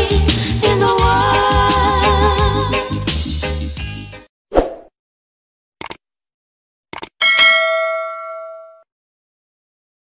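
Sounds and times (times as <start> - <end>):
notification bell ding: 7.2 - 8.8.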